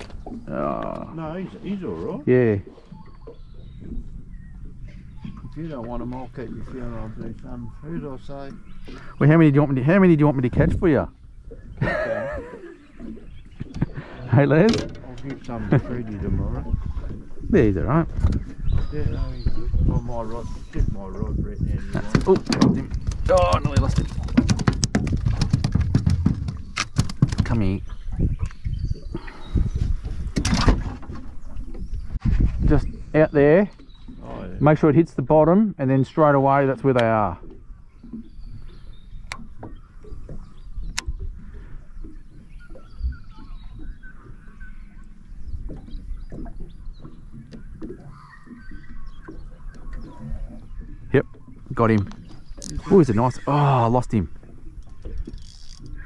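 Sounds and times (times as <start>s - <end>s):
wind and water rumble: 0.0s - 56.0s
fish flapping on a plastic board: 22.2s - 27.5s
sharp clicks: 36.9s - 37.2s
faint bird calls: 37.4s - 56.0s.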